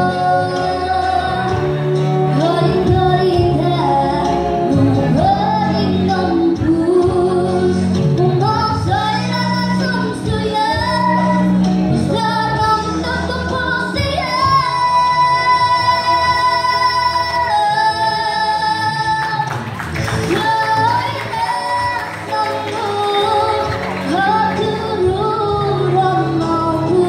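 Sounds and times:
woman singing into microphone: 0.0s - 27.0s.

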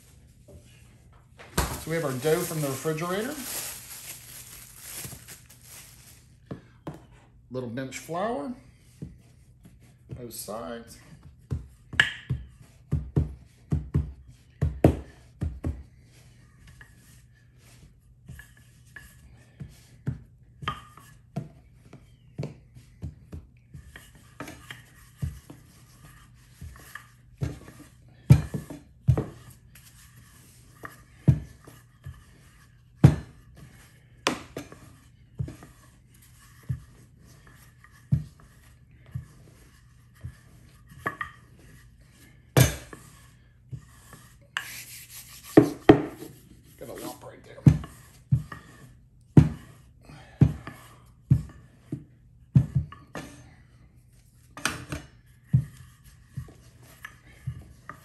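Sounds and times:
rolling pin rubbing dough: 0.0s - 6.5s, 8.0s - 58.0s
rolling pin knocking on counter: 45.6s - 46.3s.

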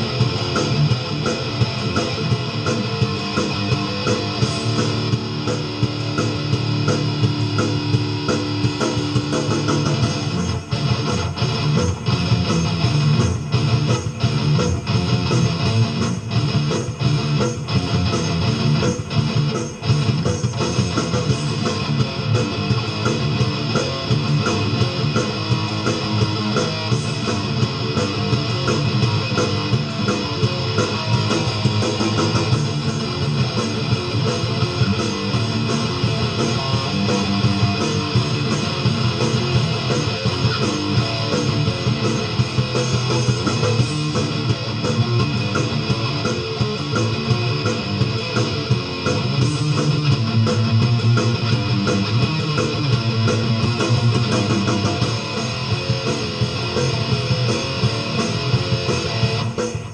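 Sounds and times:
heavy metal electric guitar: 0.0s - 59.9s.

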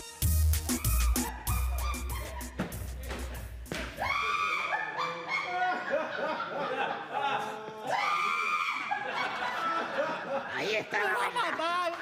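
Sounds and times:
bass-heavy dance music from radio: 0.0s - 3.7s.

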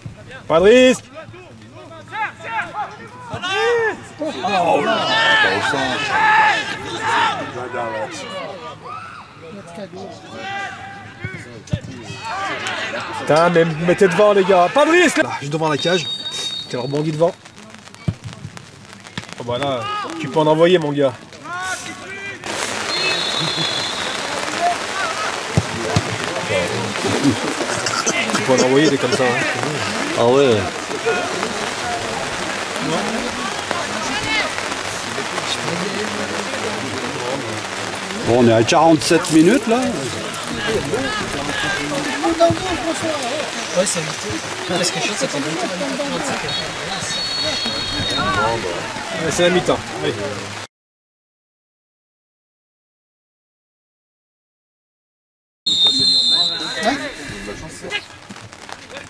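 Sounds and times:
steady rain falling: 0.0s - 8.9s, 9.6s - 50.7s, 55.7s - 59.0s
faint voices calling out: 21.2s - 50.6s.

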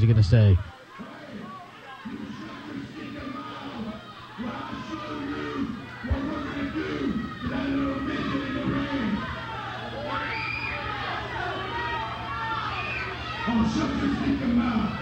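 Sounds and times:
man talking over pa system: 0.0s - 0.7s
steady electrical hum: 0.0s - 15.0s.

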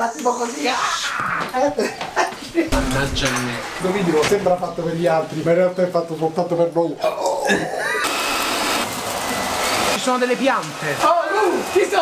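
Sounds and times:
hair dryer blowing air: 8.0s - 12.0s.

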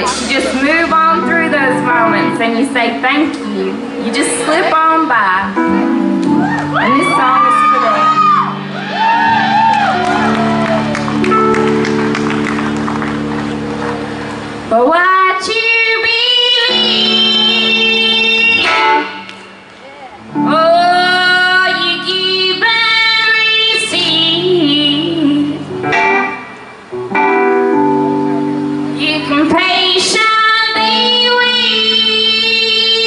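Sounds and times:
woman singing: 0.0s - 5.6s, 14.7s - 19.2s, 20.4s - 25.7s, 29.0s - 33.0s
sustained keyboard chord: 0.0s - 8.8s, 10.0s - 19.3s, 20.2s - 33.0s
bass: 0.0s - 33.0s.

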